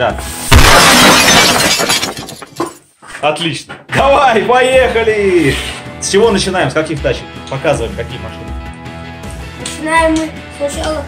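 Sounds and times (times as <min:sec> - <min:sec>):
plastic and cardboard crackling crash: 0:00.5 - 0:02.8.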